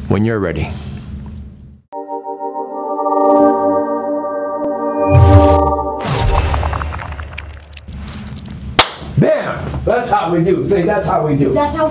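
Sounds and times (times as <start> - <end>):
logo sound effect: 2.0 - 7.9
sharp bang: 5.2 - 8.1.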